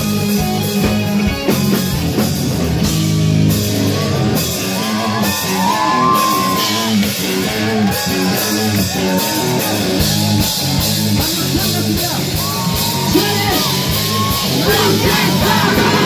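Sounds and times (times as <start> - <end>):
drums: 0.0 - 16.0
electric guitar: 0.0 - 16.0
person singing and shouting: 12.3 - 16.0.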